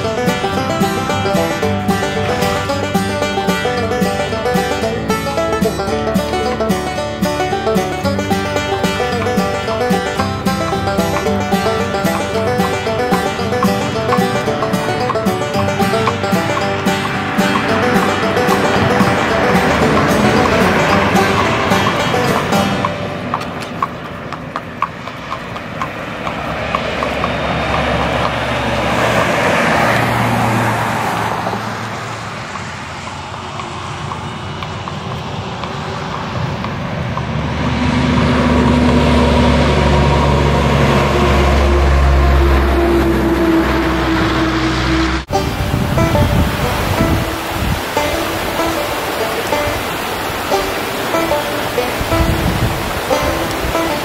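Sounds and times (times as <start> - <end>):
background music: 0.0 - 23.7, 45.2 - 54.0
heavy truck engine passing: 0.0 - 54.0.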